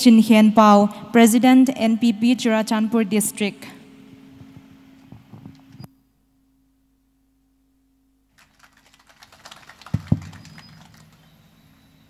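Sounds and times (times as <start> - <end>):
dull microphone thumps: 4.4 - 5.8
microphone handling rustle: 4.4 - 5.9.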